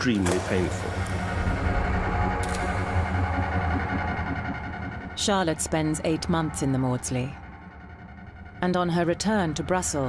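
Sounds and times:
low drone: 0:00.0 - 0:10.0
sustained tones: 0:00.0 - 0:10.0.

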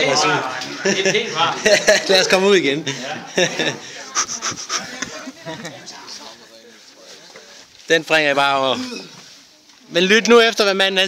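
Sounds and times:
indistinct group talking: 0:00.0 - 0:11.0.

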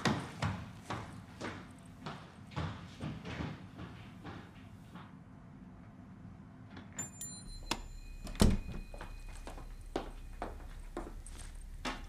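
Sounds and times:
soft footsteps on floor: 0:00.0 - 0:05.6, 0:08.6 - 0:12.0
door clicking and shutting: 0:07.6 - 0:09.1.

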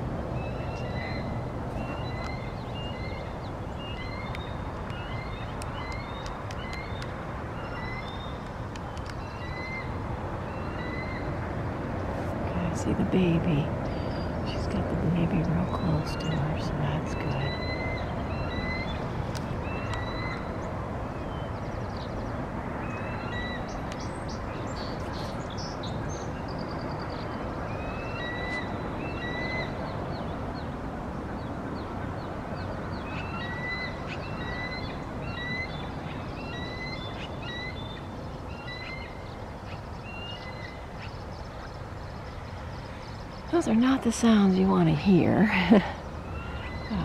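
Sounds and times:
eagle high chirping calls: 0:09.2 - 0:09.9, 0:15.7 - 0:20.6, 0:27.7 - 0:29.8, 0:32.9 - 0:41.8, 0:46.0 - 0:47.0.

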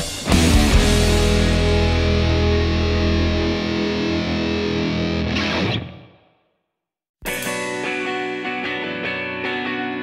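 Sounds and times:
distorted electric guitar: 0:00.0 - 0:06.3, 0:07.2 - 0:10.0
deep bass: 0:00.2 - 0:03.6.

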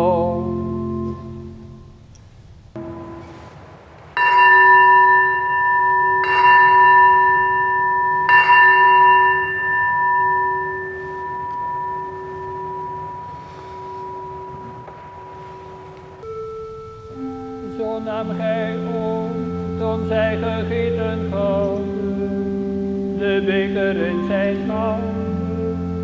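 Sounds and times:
organ note: 0:00.0 - 0:26.0
bell ringing: 0:02.8 - 0:26.0.

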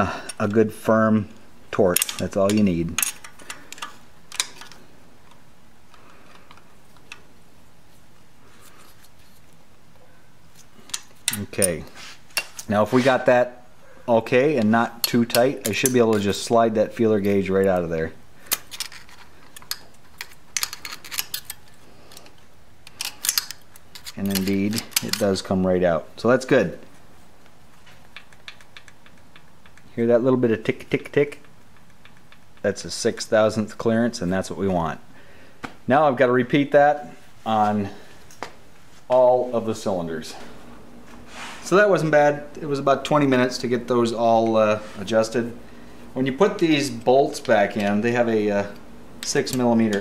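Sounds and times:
tool handling noise: 0:01.7 - 0:13.4, 0:14.1 - 0:25.6, 0:26.8 - 0:30.0, 0:37.5 - 0:50.0
sharp metal click: 0:01.9 - 0:04.8, 0:22.8 - 0:25.4.

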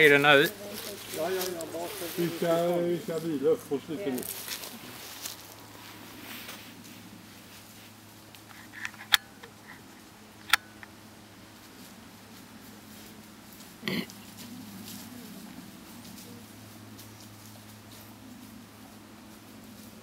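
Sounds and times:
person speaking: 0:00.0 - 0:05.0
faint steady hum: 0:00.0 - 0:20.0.

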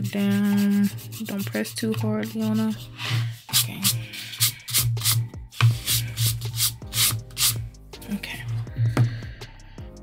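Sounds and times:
eraser rubbing on paper: 0:00.0 - 0:07.6.

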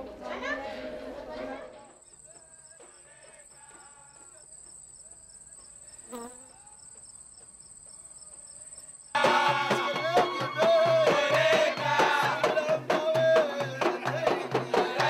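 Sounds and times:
crickets trilling: 0:02.0 - 0:09.2
music with singing and drums: 0:09.2 - 0:15.0.

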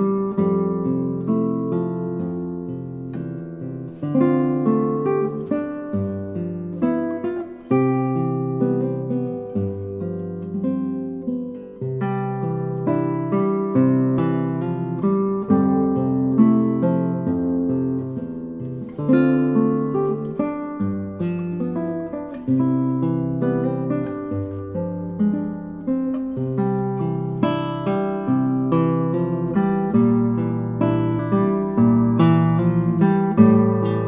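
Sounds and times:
solo classical guitar fingerpicking: 0:00.0 - 0:34.0.

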